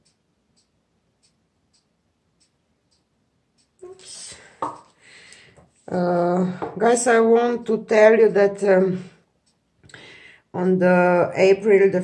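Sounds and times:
faint ticks: 0.0s - 3.8s
woman speaking: 3.8s - 4.7s, 5.9s - 9.2s, 10.6s - 12.0s.

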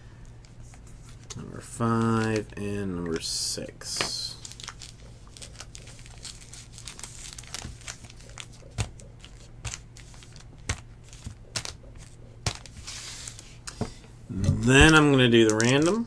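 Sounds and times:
steady low hum: 0.0s - 16.0s
foil packs crinkling: 1.0s - 13.6s, 14.5s - 16.0s.

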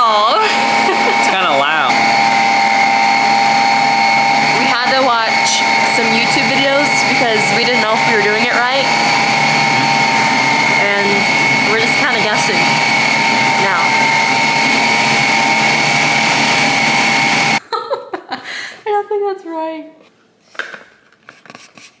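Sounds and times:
ice cream maker whirring: 0.0s - 17.6s.

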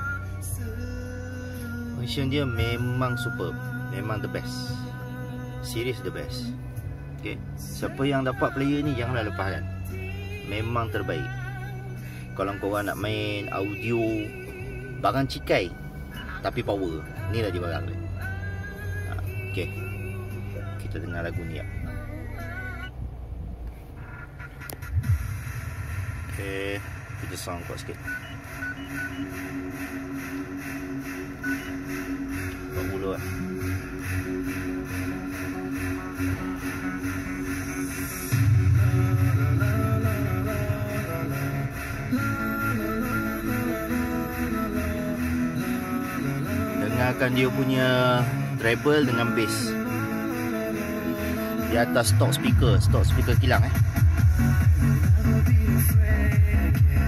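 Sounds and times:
heavy bass line: 0.0s - 57.0s
music through car speakers: 0.0s - 57.0s.

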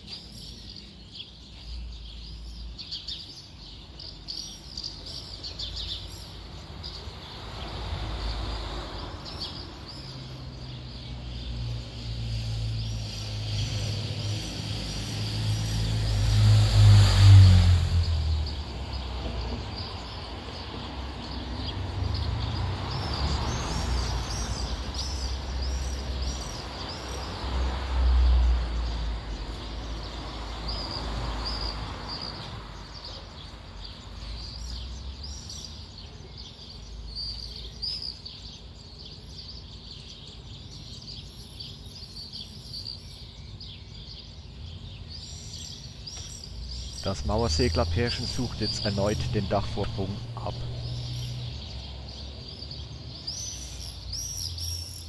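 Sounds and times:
small birds chirping: 0.0s - 55.0s
vehicle passing by: 6.8s - 33.1s, 46.5s - 55.0s.

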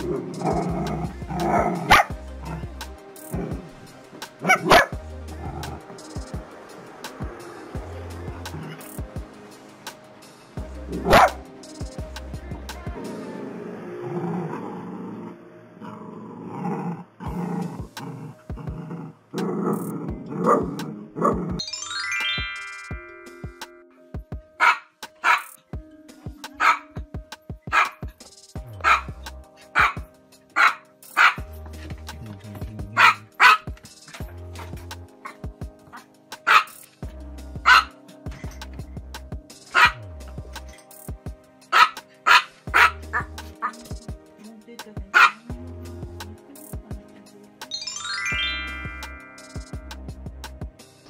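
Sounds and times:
background music with bass beat: 0.0s - 13.2s, 17.3s - 51.0s
small dog yapping: 24.6s - 25.5s, 26.6s - 26.9s, 27.7s - 28.0s, 28.8s - 29.1s, 29.8s - 30.0s, 30.6s - 31.4s, 33.0s - 33.7s, 36.5s - 36.7s, 37.7s - 37.9s, 39.8s - 40.0s, 41.8s - 43.8s, 45.2s - 45.4s.

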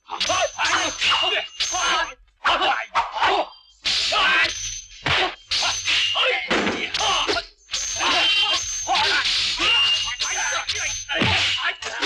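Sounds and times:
yelping shouts: 0.1s - 3.5s, 4.1s - 7.4s, 8.0s - 12.0s
blades swishing and clashing: 11.1s - 12.0s.

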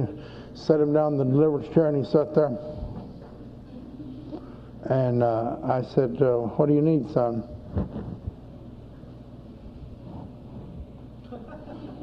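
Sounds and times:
tape hum and hiss: 0.0s - 12.0s.

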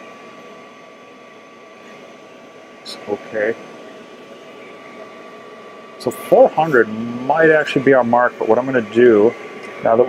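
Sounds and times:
exhaust fan and pump whirring: 0.0s - 10.0s.

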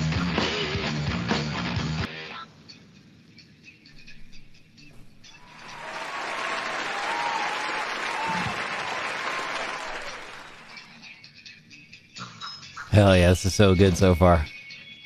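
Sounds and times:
audience applause: 5.4s - 10.9s.

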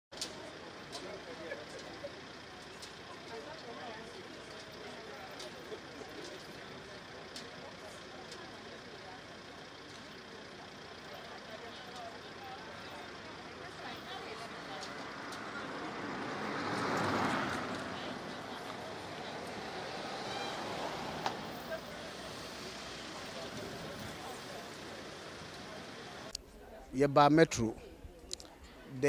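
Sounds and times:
traffic noise: 0.1s - 29.0s
people talking: 27.0s - 29.0s.

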